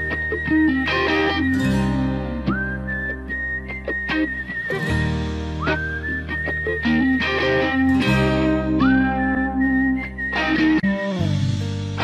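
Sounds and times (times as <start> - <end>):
whistled melody: 0.0 - 11.7
rock ballad guitar and bass: 0.0 - 12.0.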